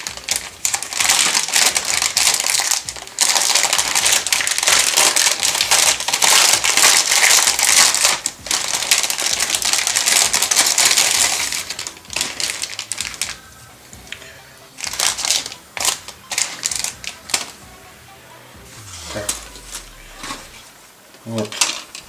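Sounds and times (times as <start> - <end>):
plastic bag crinkling: 0.0 - 14.2, 14.8 - 17.6.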